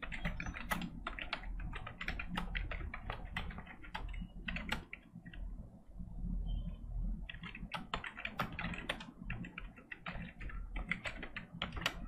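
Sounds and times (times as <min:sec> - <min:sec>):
keyboard typing: 0:00.0 - 0:05.7, 0:06.7 - 0:12.0.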